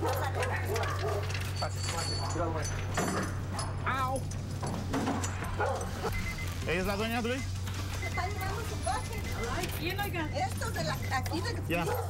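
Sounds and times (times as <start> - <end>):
dog barking: 0.0 - 1.5, 5.5 - 6.2, 11.7 - 12.0.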